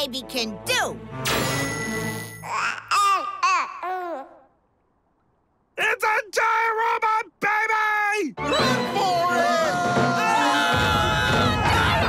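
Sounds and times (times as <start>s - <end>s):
baby babbling: 2.4s - 4.5s.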